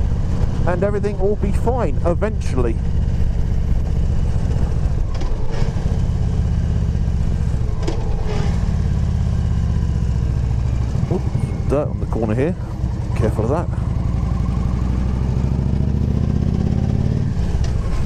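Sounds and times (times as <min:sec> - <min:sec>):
motorcycle engine running: 0:00.0 - 0:18.0.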